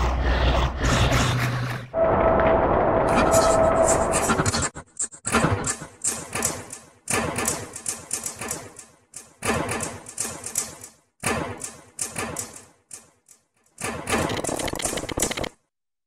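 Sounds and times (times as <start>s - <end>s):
small clicks: 11.6s - 15.6s
dense rapid clattering: 13.8s - 15.6s.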